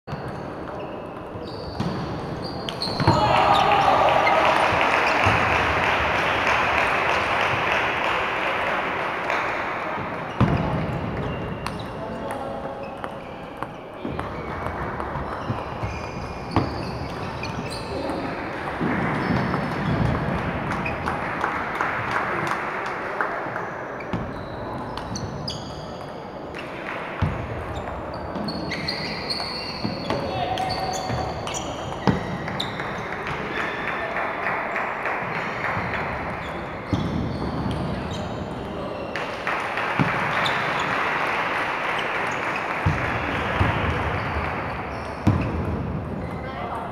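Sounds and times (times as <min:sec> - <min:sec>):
voices echoing in sports hall: 0:00.0 - 0:46.9.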